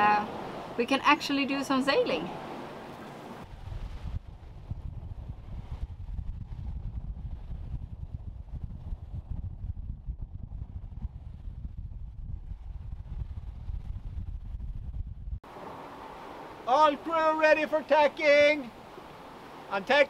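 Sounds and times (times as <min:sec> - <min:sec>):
wind buffeting microphone: 0:00.0 - 0:16.6.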